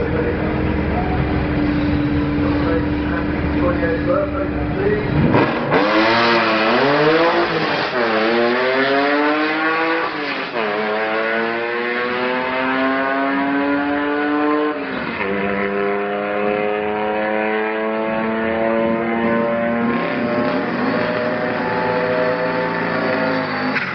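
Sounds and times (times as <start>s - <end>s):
van engine accelerating hard: 0.0s - 23.9s.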